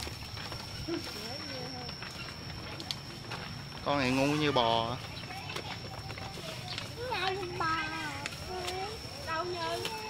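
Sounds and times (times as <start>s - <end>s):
thin steady high tone: 0.0s - 10.0s
indistinct high-pitched voices: 0.3s - 10.0s.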